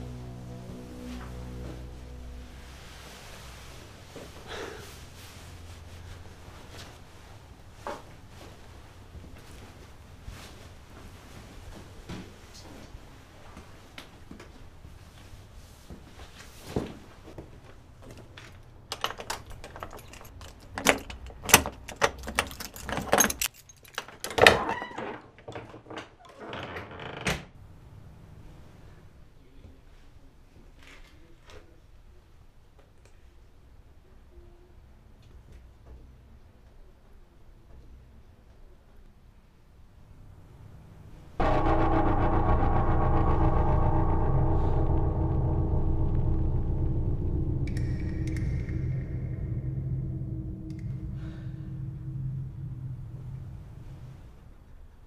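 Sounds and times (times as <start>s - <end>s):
loud held orchestral chord: 0.0s - 3.7s, 41.4s - 54.2s
low rumble: 0.0s - 4.2s, 41.4s - 55.0s.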